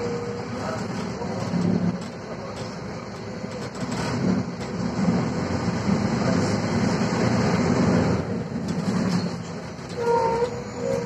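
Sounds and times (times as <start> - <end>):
bus body rattles: 0.0 - 11.0
bus engine and road rumble: 0.0 - 11.0.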